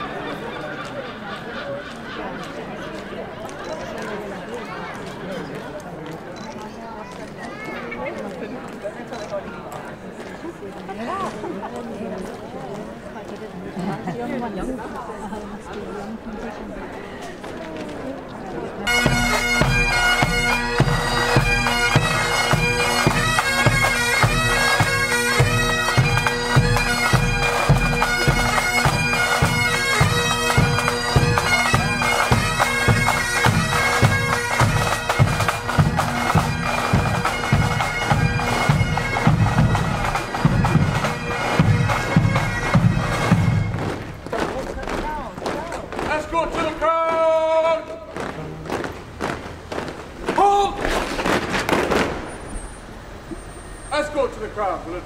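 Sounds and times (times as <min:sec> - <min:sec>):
voices: 0:00.0 - 0:51.4
street sound: 0:00.0 - 0:55.0
bagpipes playing a march: 0:18.8 - 0:44.5
drum beat: 0:19.0 - 0:46.8.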